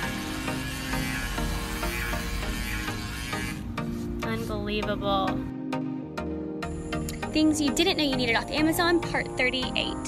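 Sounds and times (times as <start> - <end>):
electric shaver buzzing: 0.0 - 4.1
background music: 0.0 - 10.0.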